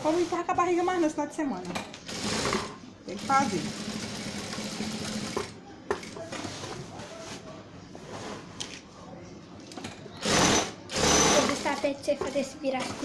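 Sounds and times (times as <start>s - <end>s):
sewing machine stitching rug: 2.1s - 5.5s, 10.2s - 11.8s.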